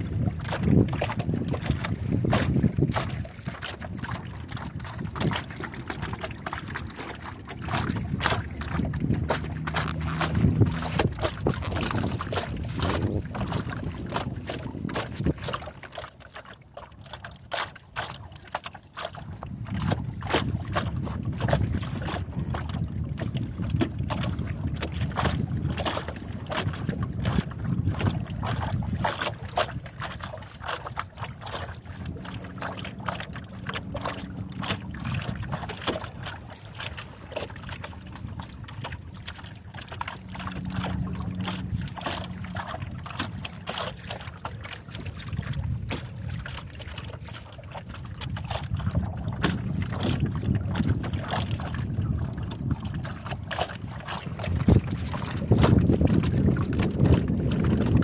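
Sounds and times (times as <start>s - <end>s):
water lapping against hull: 0.0s - 58.0s
wind rumbling on microphone: 0.0s - 58.0s.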